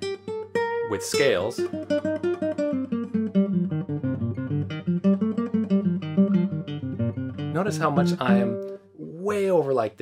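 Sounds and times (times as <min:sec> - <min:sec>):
classical guitar scale run: 0:00.2 - 0:08.9.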